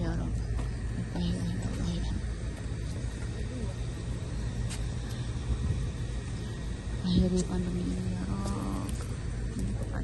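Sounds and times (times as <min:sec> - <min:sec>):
faint voices: 0:00.0 - 0:10.0
steady low rumble: 0:00.0 - 0:10.0.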